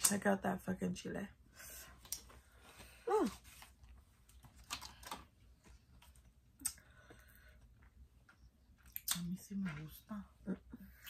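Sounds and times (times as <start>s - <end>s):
wet mouth clicks: 8.8s - 9.3s.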